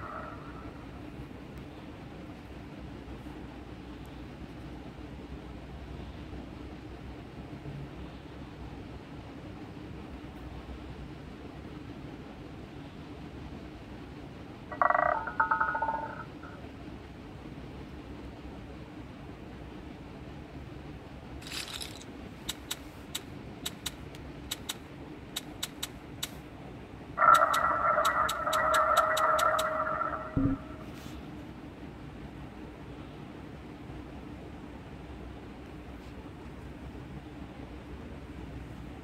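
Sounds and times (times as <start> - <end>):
long electronic tone: 14.7 - 16.6, 30.1 - 30.9
betting chips clicking: 21.4 - 22.7, 27.4 - 29.8.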